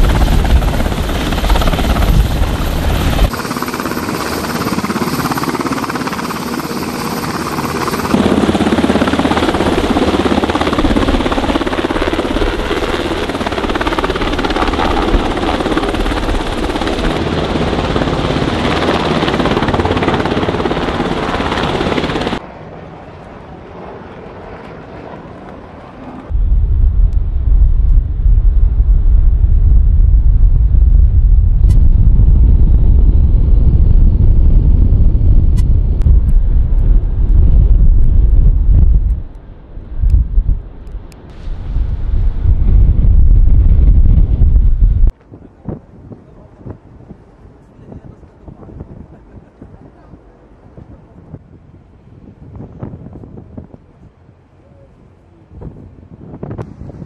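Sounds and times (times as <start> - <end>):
wind buffeting microphone: 0.0 - 22.4, 26.1 - 57.0
helicopter hovering: 0.0 - 45.6.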